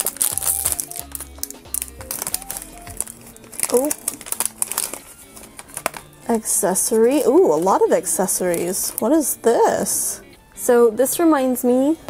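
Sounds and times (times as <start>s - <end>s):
plastic bag being pulled out: 0.0s - 6.2s
foil pouch crinkling: 0.0s - 7.8s, 8.4s - 9.2s.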